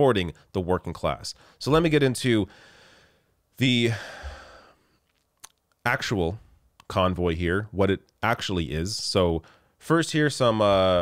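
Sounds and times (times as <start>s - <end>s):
man talking: 0.0s - 2.5s, 3.6s - 4.3s, 5.8s - 11.0s
man exhaling: 3.9s - 4.8s.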